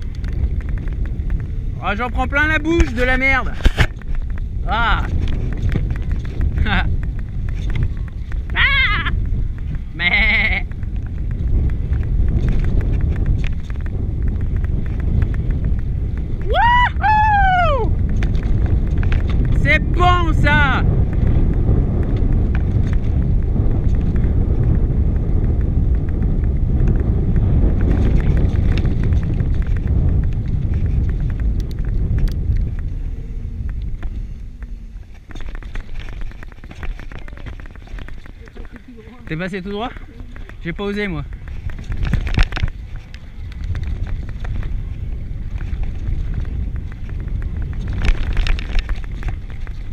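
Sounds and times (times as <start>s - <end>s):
bike tyres rattling on trail: 0.0s - 49.9s
wind buffeting microphone: 0.0s - 49.9s.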